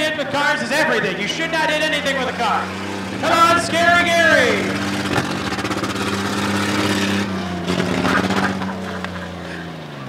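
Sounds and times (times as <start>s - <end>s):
engine running low hum: 0.0s - 10.0s.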